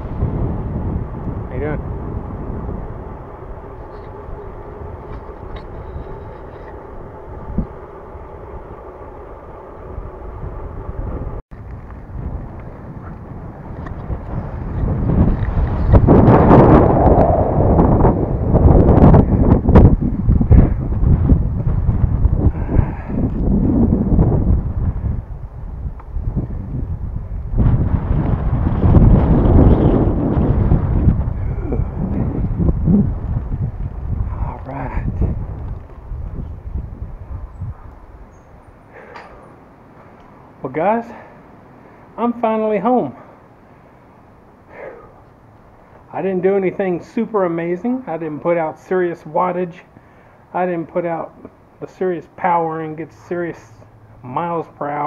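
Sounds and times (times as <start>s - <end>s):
road and tyre noise: 0.0s - 55.0s
wind buffeting microphone: 0.0s - 55.0s.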